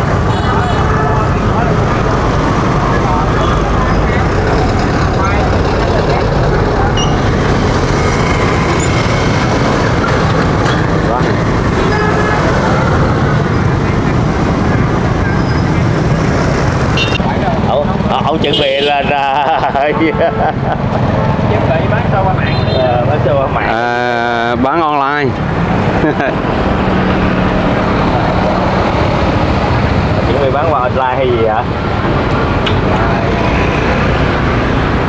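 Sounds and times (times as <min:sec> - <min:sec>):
indistinct voices: 0:00.0 - 0:35.0
motorbike traffic: 0:00.0 - 0:35.0.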